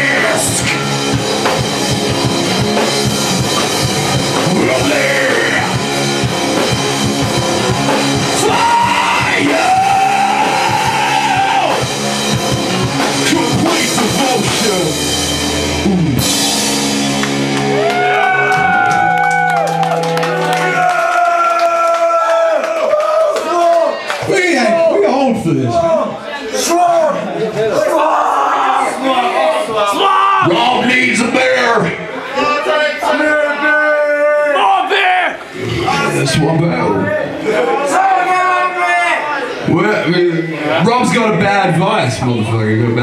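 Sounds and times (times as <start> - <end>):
live rock band playing: 0.0 - 20.8
shouted vocals: 4.4 - 5.9, 8.2 - 11.9, 17.6 - 31.2, 32.2 - 40.8.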